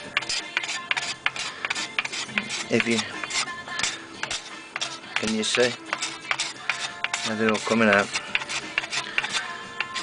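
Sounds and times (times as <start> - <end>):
faint music: 0.0 - 10.0
cabinet scraper rasping on wood: 0.2 - 10.0.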